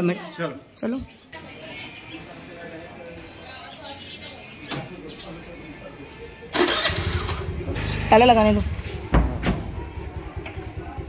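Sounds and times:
scooter engine starting and idling: 6.5 - 11.0.

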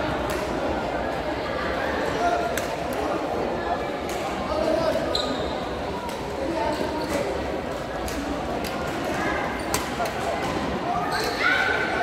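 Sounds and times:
indistinct chatter echoing: 0.0 - 12.0
shoe squeak: 5.0 - 5.7, 11.0 - 11.6
rackets hitting shuttlecock: 9.7 - 10.8.

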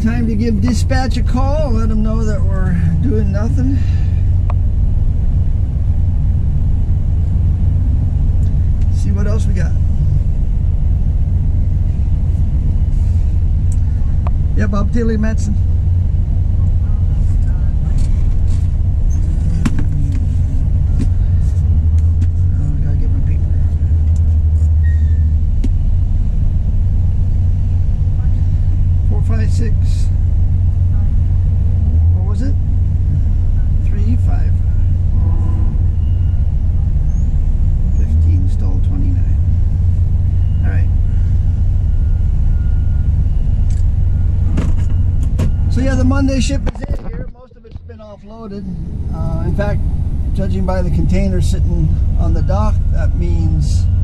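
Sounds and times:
diesel engine idling: 0.0 - 54.0.

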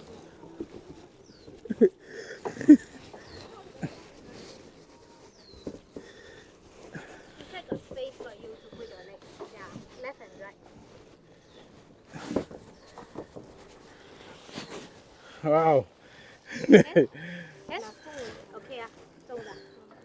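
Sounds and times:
quiet indistinct voices: 0.0 - 20.0.

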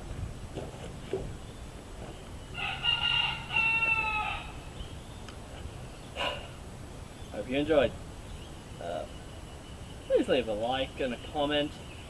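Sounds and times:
rooster crowing: 2.5 - 4.7.

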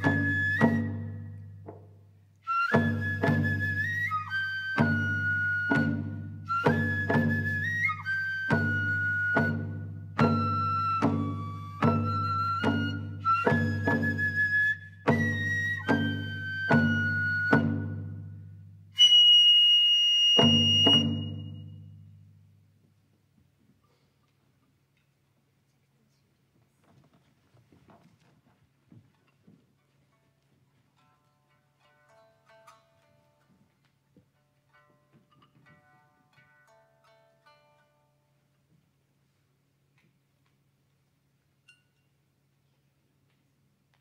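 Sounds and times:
bamboo flute long high notes: 0.0 - 1.4, 2.4 - 18.1, 19.0 - 21.8.

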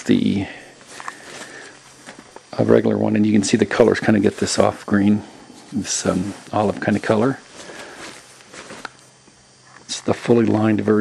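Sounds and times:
jacket fabric rustling: 0.7 - 9.3.

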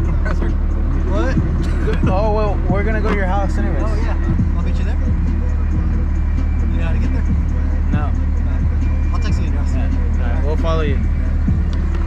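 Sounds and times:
music playing: 0.0 - 12.0
vehicle engine idling: 0.0 - 12.0.

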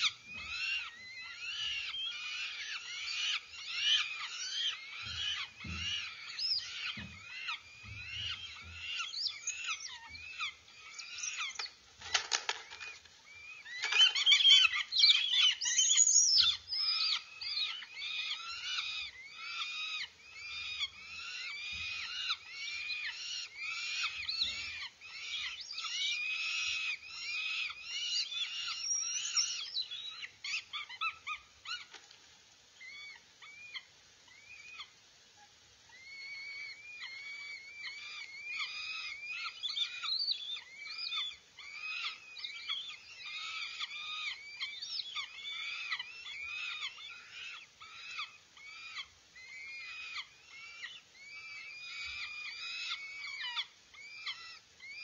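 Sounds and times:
nestlings begging calls: 0.0 - 32.0, 32.7 - 35.0, 35.8 - 55.0.

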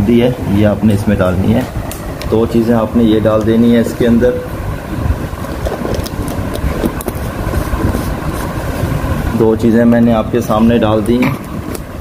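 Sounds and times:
low rumbling background noise: 0.0 - 12.0.

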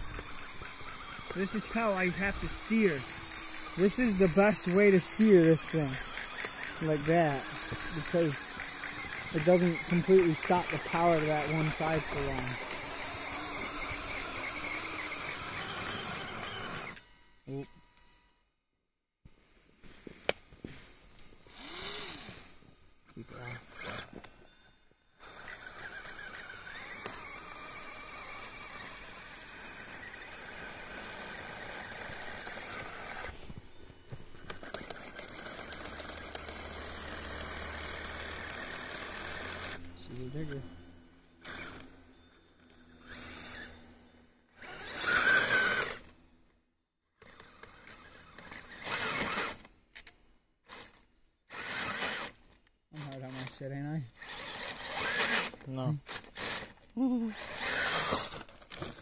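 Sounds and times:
electric motor whining: 0.0 - 18.4, 21.2 - 46.4, 47.2 - 52.4, 53.0 - 59.0.

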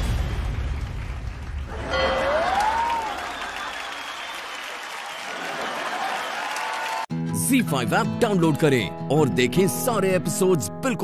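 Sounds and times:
audience applauding: 0.5 - 7.1.

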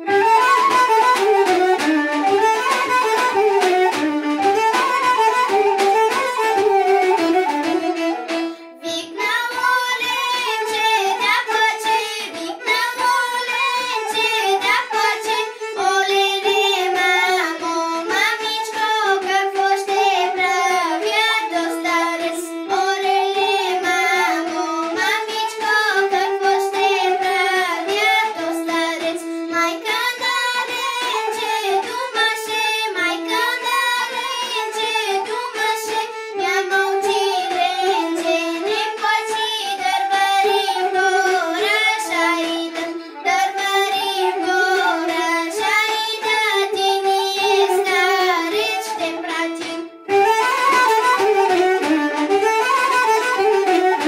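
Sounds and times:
girl singing folk melody: 0.0 - 54.0.

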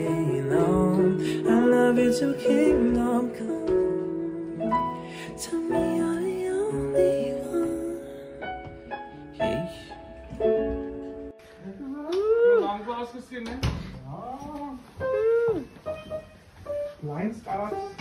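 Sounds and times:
piano chords: 0.0 - 12.0, 15.0 - 18.0.

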